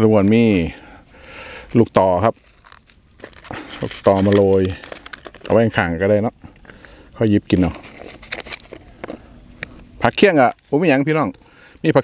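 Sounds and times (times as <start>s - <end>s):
plastic tray crinkling: 2.3s - 6.1s, 7.5s - 9.2s
man speaking: 3.8s - 4.8s, 5.5s - 6.4s, 7.2s - 7.8s, 10.0s - 12.0s.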